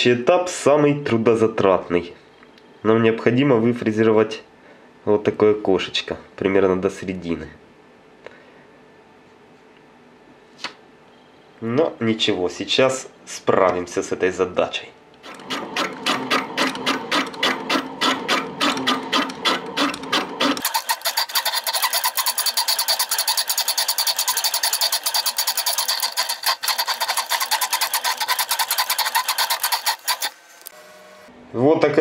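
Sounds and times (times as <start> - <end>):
cutting disc cutting steel rod: 15.2 - 30.9.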